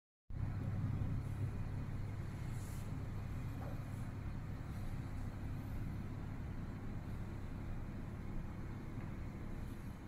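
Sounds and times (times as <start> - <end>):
low background rumble: 0.3 - 10.0.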